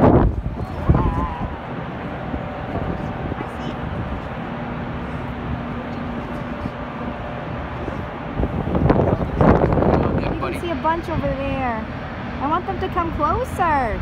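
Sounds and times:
wind on microphone: 0.0 - 12.5
faint voices: 0.4 - 14.0.

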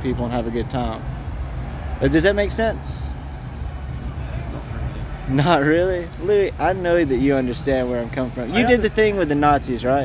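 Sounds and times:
street background rumble: 0.0 - 10.0.

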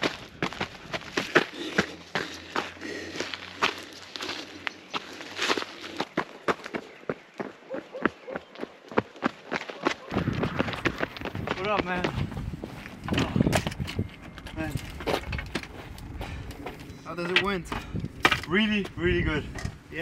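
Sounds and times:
running footsteps on gravel: 0.0 - 13.6.

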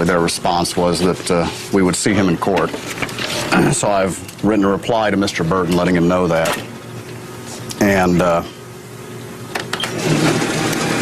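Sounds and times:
photocopier feed mechanism running: 0.0 - 8.5, 9.4 - 11.0.

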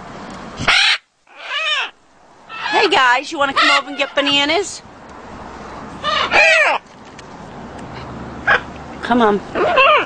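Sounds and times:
macaw calling: 0.6 - 4.6, 6.0 - 6.8.

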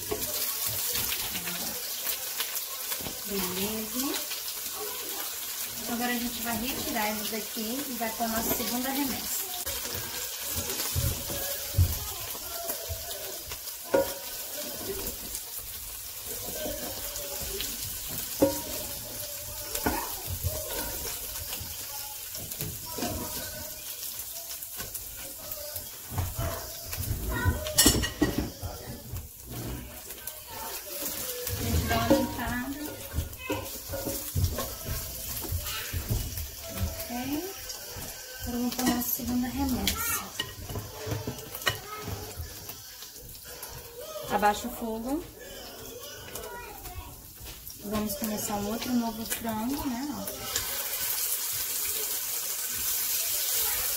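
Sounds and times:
oil sizzling on grill pan: 0.0 - 53.9
spatula scraping grill plate: 29.1 - 36.1.

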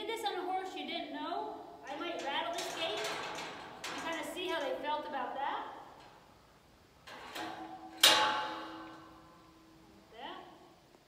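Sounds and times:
metal gate clanging: 1.8 - 9.9
metal rattle and click: 1.9 - 4.8, 7.0 - 9.6.

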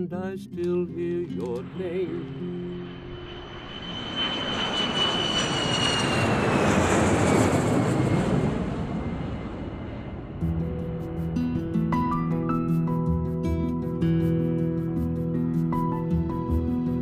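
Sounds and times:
jet airliner flying low overhead: 0.4 - 17.0
jet engine whine sliding down: 0.5 - 13.0.

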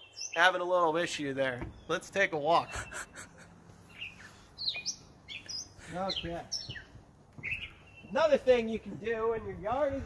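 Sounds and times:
songbird chirps: 0.0 - 10.0.

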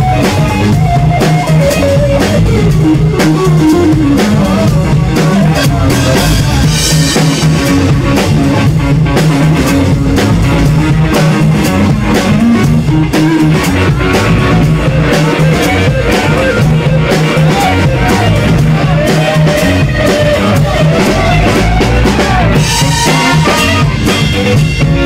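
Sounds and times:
funk band playing: 0.0 - 25.0.

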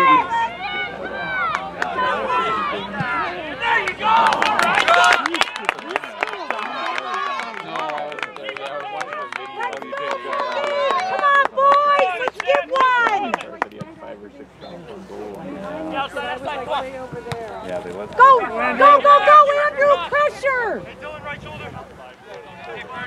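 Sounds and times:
spectators talking and calling out: 0.0 - 23.0.

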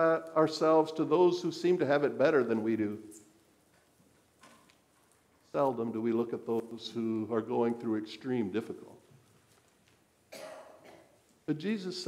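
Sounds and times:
single short cough: 10.3 - 11.2.

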